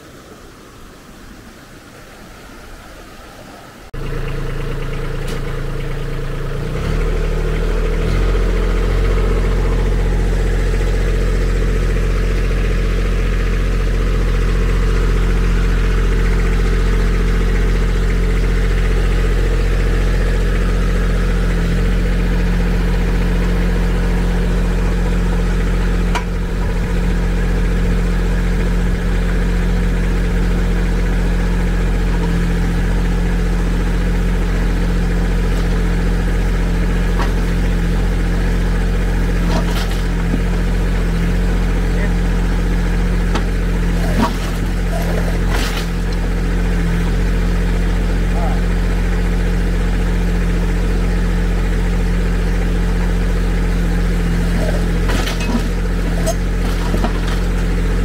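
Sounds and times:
tractor diesel engine running: 3.9 - 58.0.

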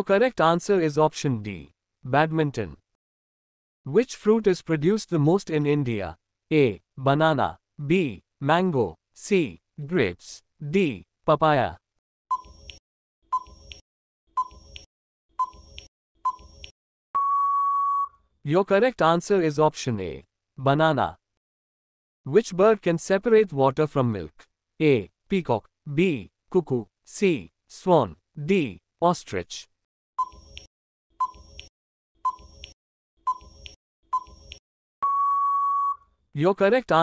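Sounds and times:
long steady beep: 17.2 - 18.2, 35.0 - 36.0
short timer beep: 17.2 - 18.2, 35.0 - 36.0.

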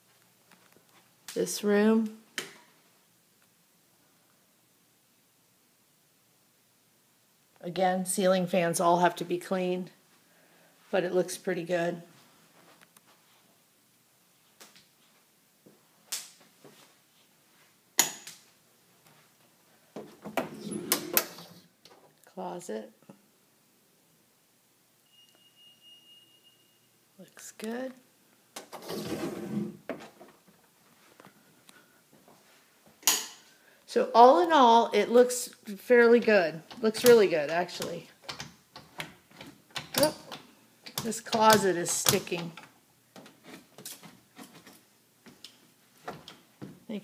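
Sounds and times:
closet door clicking and knocking: 37.8 - 42.6.

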